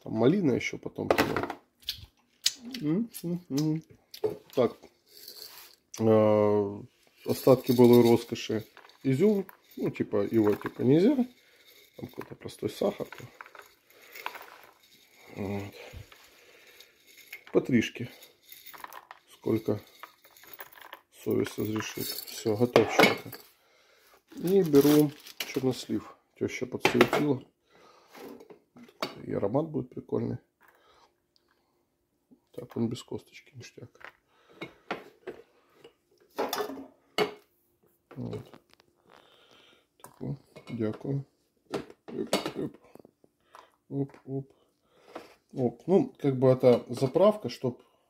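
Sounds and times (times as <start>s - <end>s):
glass jar clinking: 7.2s - 23.5s.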